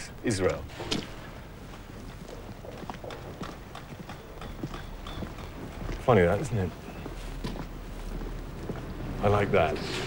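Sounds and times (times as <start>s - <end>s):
boots walking on pavement: 0.5s - 9.4s.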